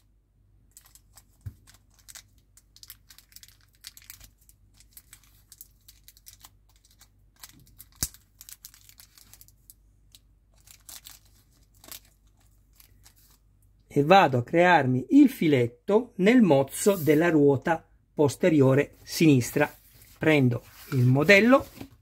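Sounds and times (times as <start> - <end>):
plastic bag crinkling: 0.7 - 13.5.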